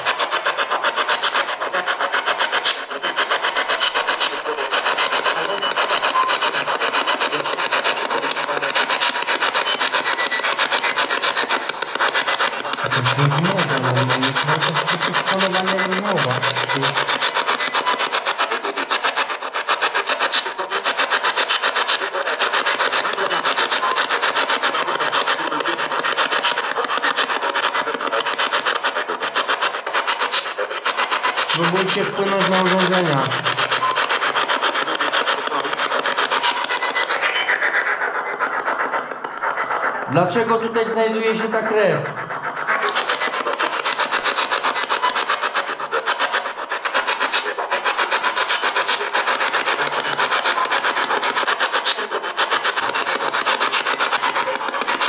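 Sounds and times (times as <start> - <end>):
voice-like radio sound: 0.0 - 46.1, 49.6 - 50.5
radio static sweeping: 11.4 - 17.9, 31.4 - 37.9, 38.5 - 44.2.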